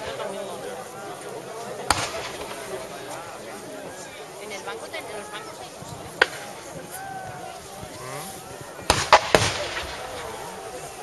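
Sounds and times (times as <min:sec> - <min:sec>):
musket shot crack: 0:01.9 - 0:03.1, 0:08.9 - 0:11.0.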